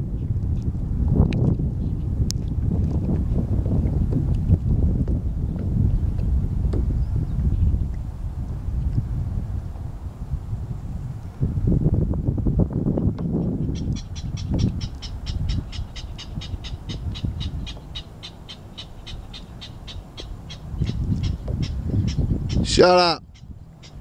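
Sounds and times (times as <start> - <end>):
wind gusting on microphone: 0.0 - 24.0.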